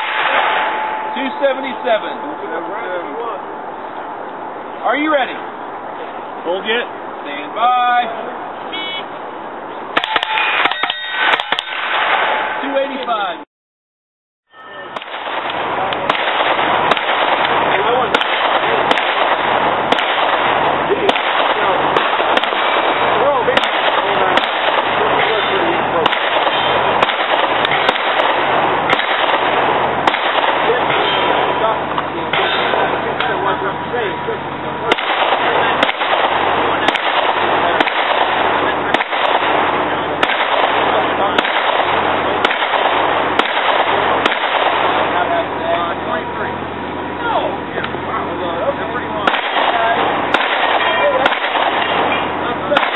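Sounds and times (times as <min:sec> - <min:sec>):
pistol shots hitting steel targets: 0:00.0 - 0:02.2, 0:10.0 - 0:13.0, 0:14.9 - 0:31.7, 0:32.3 - 0:33.4, 0:34.9 - 0:45.4, 0:49.2 - 0:52.9.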